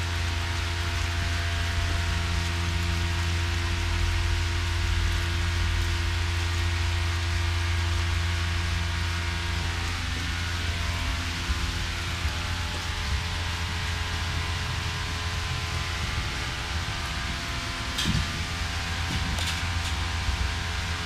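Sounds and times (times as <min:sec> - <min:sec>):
electric hoist humming: 0:00.0 - 0:21.0
rain-like hiss: 0:00.0 - 0:21.0.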